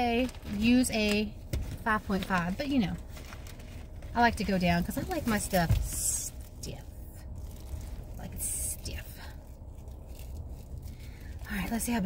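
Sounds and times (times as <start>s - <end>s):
car idling: 0.0s - 12.0s
fabric rustling: 0.0s - 12.0s.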